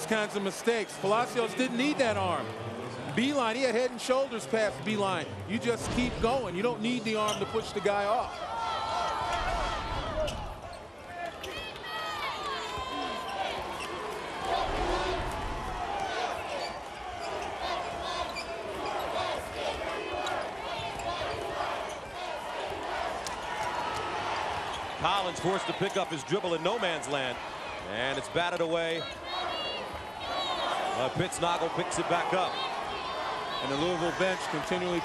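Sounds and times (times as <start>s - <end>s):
arena crowd noise: 0.0s - 35.0s.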